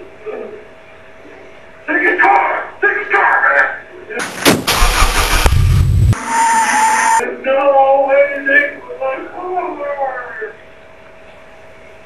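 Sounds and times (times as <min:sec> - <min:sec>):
loud noise burst with deep rumble: 0:04.5 - 0:06.2.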